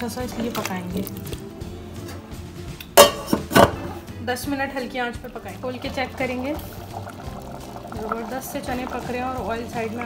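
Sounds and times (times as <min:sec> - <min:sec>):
pot lid knocking on metal pot: 0:03.0 - 0:04.0.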